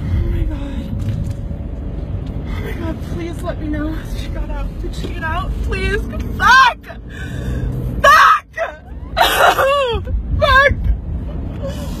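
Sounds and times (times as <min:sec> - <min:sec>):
moving car rumble: 0:00.0 - 0:12.0.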